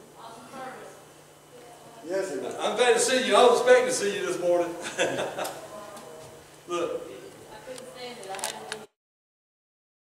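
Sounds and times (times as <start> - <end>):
indistinct talk: 0.0 - 9.0.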